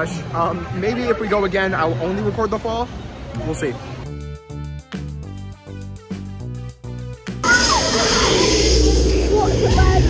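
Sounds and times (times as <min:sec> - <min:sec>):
people crying out: 0:07.4 - 0:09.0.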